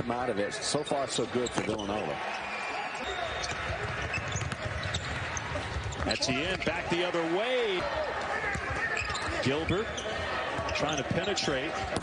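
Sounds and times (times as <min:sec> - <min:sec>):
court knocks and ticks: 0:03.4 - 0:09.7, 0:10.5 - 0:12.0.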